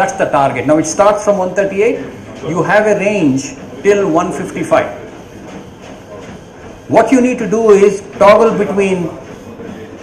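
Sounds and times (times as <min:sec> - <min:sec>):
treadmill running: 0:00.0 - 0:10.0
footfalls of jogging: 0:01.2 - 0:10.0.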